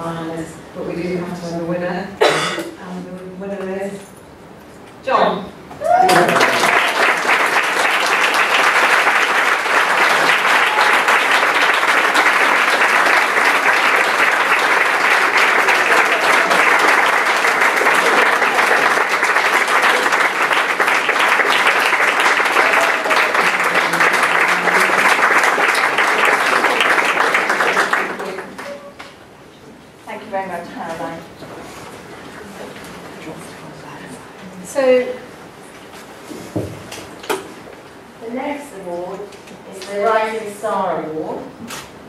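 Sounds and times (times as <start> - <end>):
audience applauding: 5.8 - 29.2.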